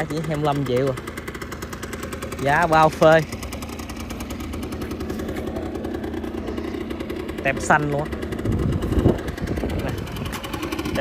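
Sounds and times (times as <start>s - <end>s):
two-stroke engine idling: 0.0s - 11.0s.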